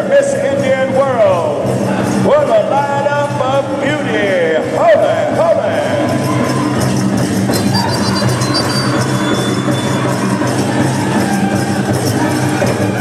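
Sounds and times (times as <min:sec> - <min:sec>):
big drum beaten steadily: 0:00.0 - 0:13.0
high singing voices: 0:06.2 - 0:13.0.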